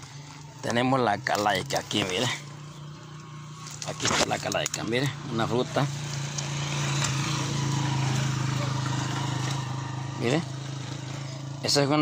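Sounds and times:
small engine droning: 0.0 - 12.0.

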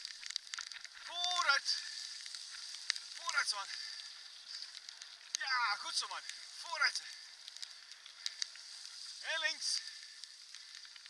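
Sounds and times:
bicycle tyres on dirt path: 0.0 - 11.0.

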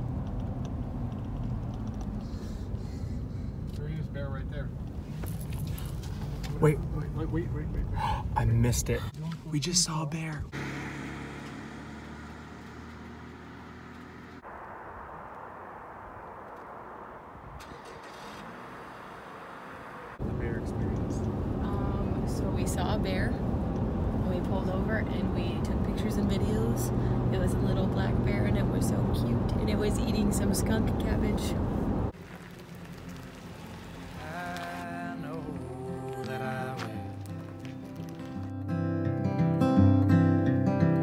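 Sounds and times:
car cabin road noise: 0.0 - 38.6
people talking: 20.3 - 23.4, 24.2 - 31.6.

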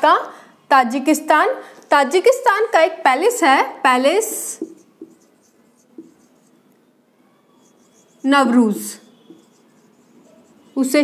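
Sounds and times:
marker scratching on whiteboard: 3.9 - 6.8, 7.4 - 11.0.

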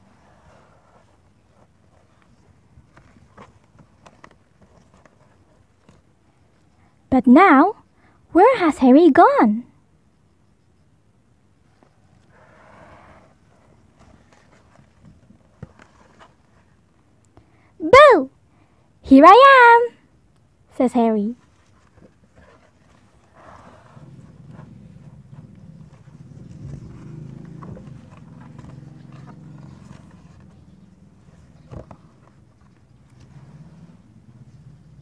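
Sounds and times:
book pages rustling: 0.0 - 6.2, 13.6 - 17.0, 21.4 - 23.3, 24.3 - 33.5.

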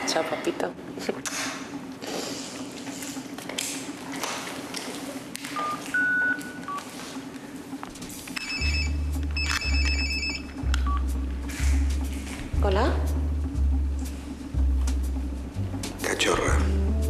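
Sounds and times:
phone keypad beeps: 5.6 - 6.8, 8.4 - 11.0
phone trilling ringtone: 8.4 - 11.0
deep pulsing buzz: 8.6 - 17.0.

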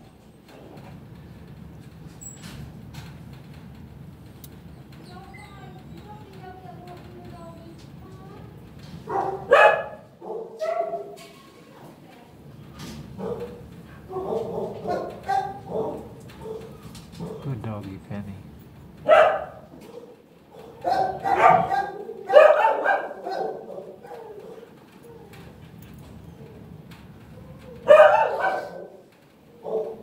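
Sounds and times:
dogs barking: 9.0 - 11.3, 13.1 - 17.5, 19.0 - 24.8, 27.8 - 30.0.

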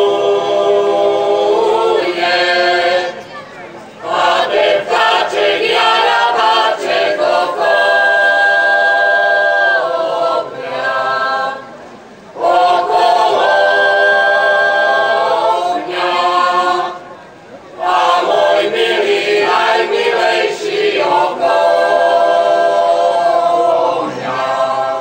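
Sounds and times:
mixed choir singing unaccompanied: 0.0 - 25.0.

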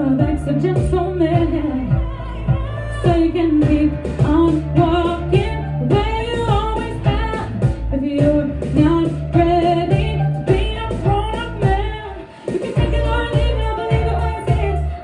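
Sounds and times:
backing music with bass and beat: 0.0 - 15.0
woman singing into microphone: 0.0 - 15.0.

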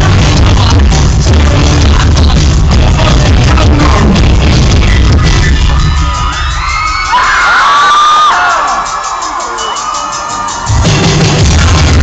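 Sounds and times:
distorted electronic punk band: 0.0 - 12.0.

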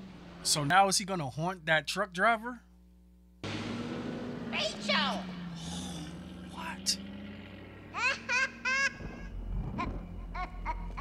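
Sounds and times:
man laughing: 8.0 - 11.0
low rumble: 9.0 - 11.0.

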